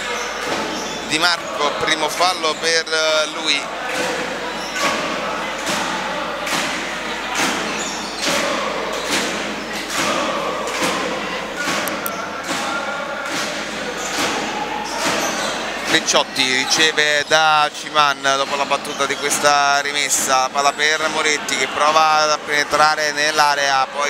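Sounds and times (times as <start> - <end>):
crowd chanting: 0.0 - 24.0
sharp rhythmic thuds: 0.0 - 24.0.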